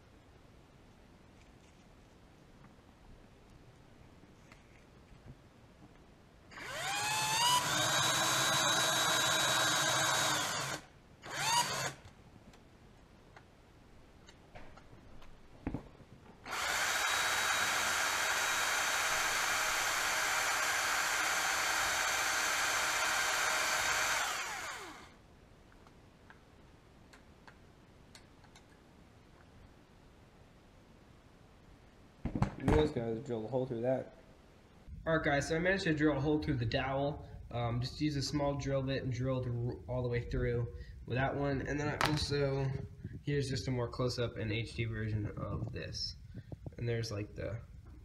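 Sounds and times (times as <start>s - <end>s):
cordless drill whining: 6.5s - 12.1s, 16.4s - 25.2s.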